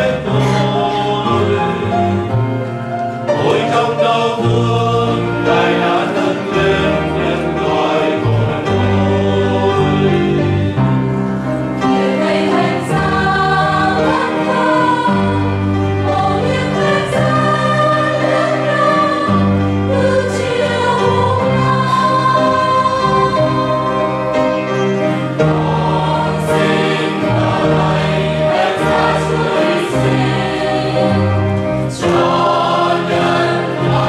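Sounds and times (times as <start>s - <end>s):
mixed choir singing a hymn: 0.0s - 34.0s
piano: 0.0s - 34.0s.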